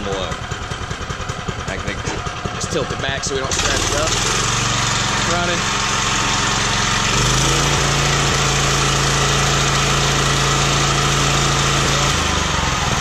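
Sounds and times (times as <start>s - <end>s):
small engine running: 0.0s - 13.0s.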